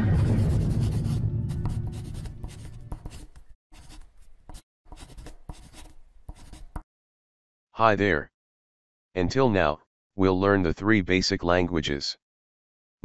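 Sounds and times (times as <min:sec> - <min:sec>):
low music tone: 0:00.0 - 0:03.2
pen writing: 0:00.8 - 0:06.8.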